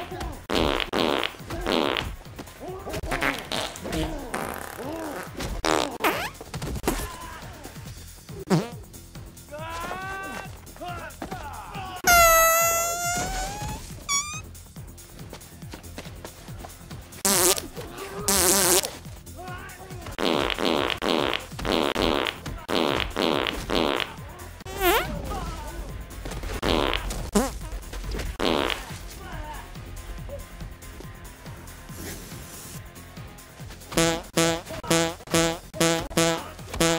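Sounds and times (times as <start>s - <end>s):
music: 0.0s - 36.9s
fart sound effects: 0.5s - 2.2s, 3.0s - 6.4s, 8.5s - 8.8s, 12.1s - 14.4s, 17.2s - 17.7s, 18.3s - 18.9s, 20.2s - 25.1s, 26.6s - 27.7s, 28.4s - 28.9s, 34.0s - 36.9s.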